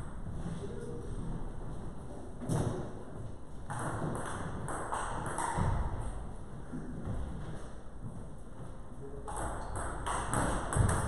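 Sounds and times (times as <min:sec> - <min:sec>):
table tennis ball bouncing: 0:03.7 - 0:06.2, 0:09.3 - 0:11.0.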